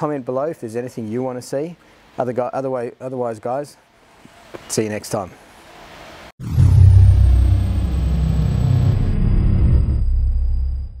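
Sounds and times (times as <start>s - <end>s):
deep loud rumble: 6.4s - 11.0s.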